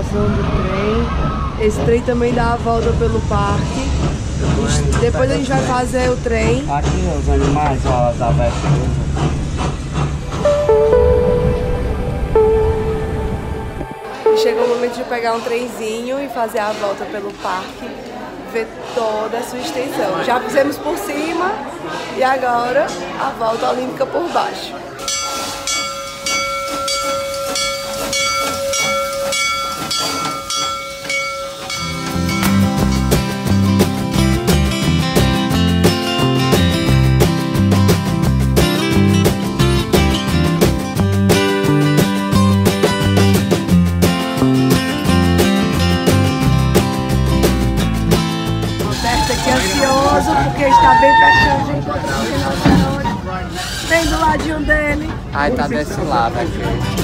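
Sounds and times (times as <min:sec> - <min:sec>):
people's voices: 0:00.0 - 0:09.0, 0:10.4 - 0:25.2, 0:48.7 - 0:57.0
train rumbling: 0:00.0 - 0:17.6, 0:25.0 - 0:42.2, 0:45.0 - 0:57.0
steady tone: 0:10.2 - 0:16.0
train bell ringing: 0:10.3 - 0:15.9, 0:25.0 - 0:33.1.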